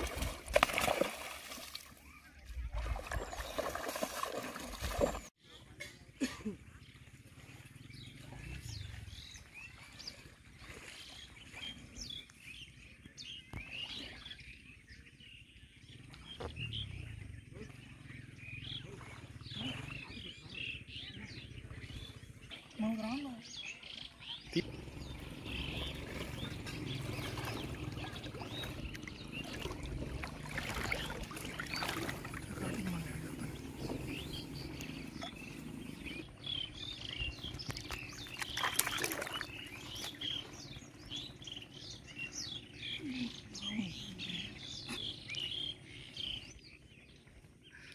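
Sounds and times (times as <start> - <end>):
faint water sounds: 0.0 - 47.9
birds chirping and whistling: 7.8 - 47.9
low rumble: 24.6 - 38.2.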